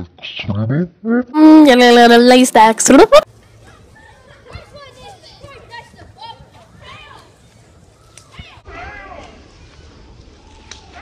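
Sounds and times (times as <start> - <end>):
children calling and shouting: 1.4 - 11.0.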